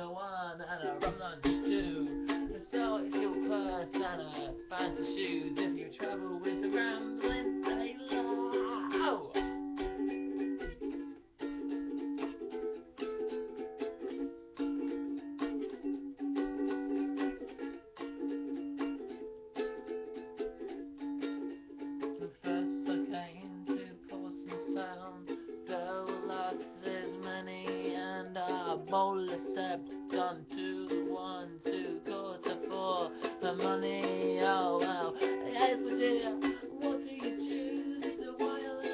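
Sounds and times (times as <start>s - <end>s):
ukulele strumming: 0.0s - 38.9s.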